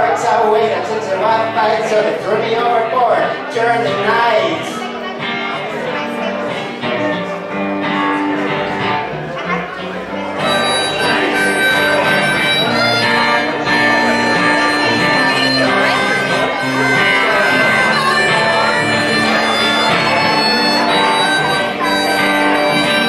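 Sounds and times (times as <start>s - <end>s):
strummed acoustic guitar: 0.0s - 23.0s
harmonica playing: 10.2s - 23.0s.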